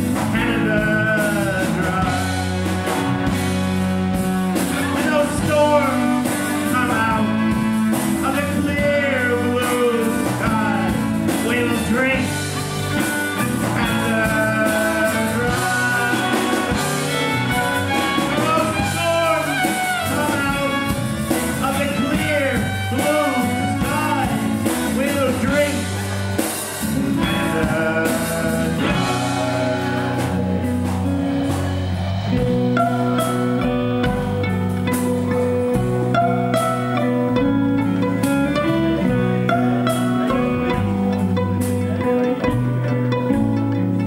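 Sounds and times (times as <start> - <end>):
drums: 0.0 - 44.0
electric guitars: 0.0 - 44.0
fiddle: 0.0 - 44.0
harmonica bending notes: 0.0 - 44.0.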